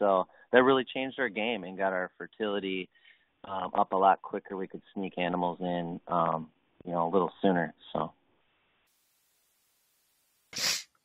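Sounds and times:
short sneeze: 0:10.6 - 0:11.0.

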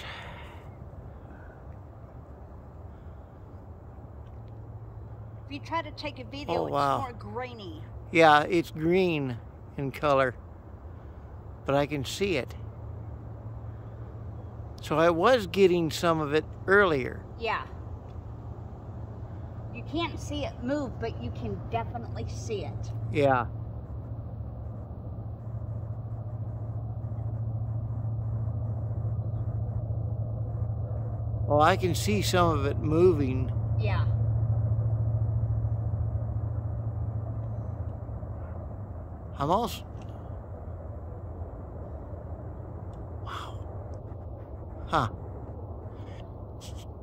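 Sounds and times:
low mechanical hum: 0:00.0 - 0:47.0.

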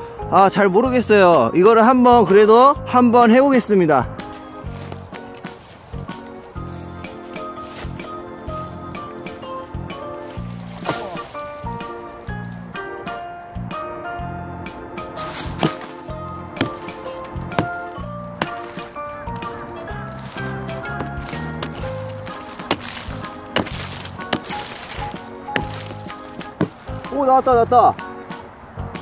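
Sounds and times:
background music with steady beat: 0:00.0 - 0:29.0
hatchet chopping wood: 0:10.7 - 0:11.4, 0:15.2 - 0:19.0, 0:20.2 - 0:27.2.

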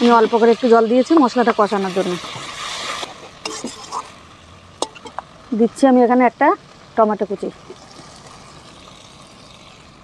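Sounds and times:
paste sizzling in oil: 0:00.0 - 0:10.0
metal spatula scraping pan: 0:02.0 - 0:04.2, 0:04.8 - 0:05.2.

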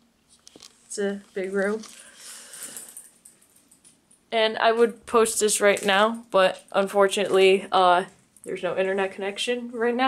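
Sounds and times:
faint breath noise: 0:01.9 - 0:03.1.

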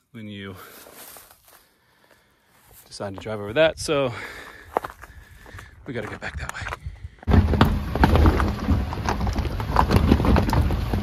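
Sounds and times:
footsteps on gravel: 0:00.6 - 0:11.0.

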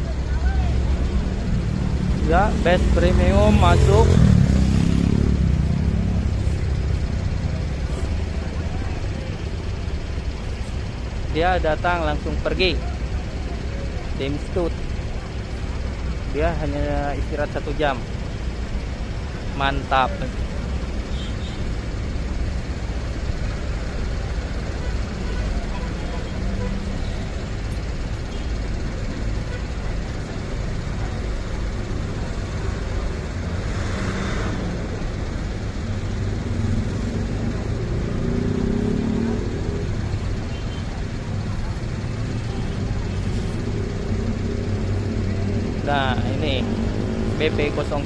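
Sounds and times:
coach diesel engines rumbling: 0:00.0 - 0:48.0.

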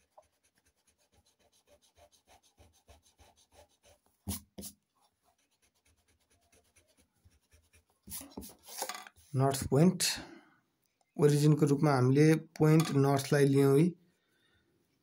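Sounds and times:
eraser rubbing on paper: 0:00.0 - 0:08.9.

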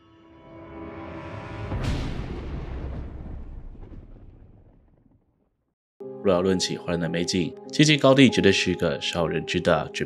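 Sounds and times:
thunderclap crack and rumble: 0:01.7 - 0:05.7.

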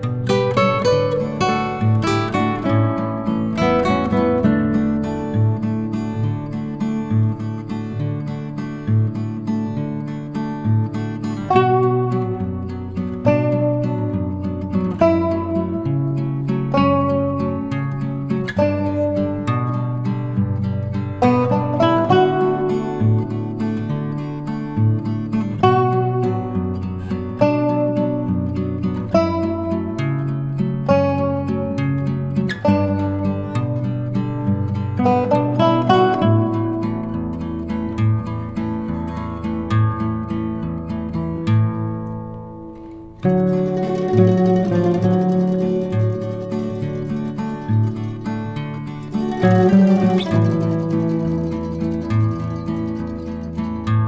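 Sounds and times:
plucked string music: 0:00.0 - 0:54.0.

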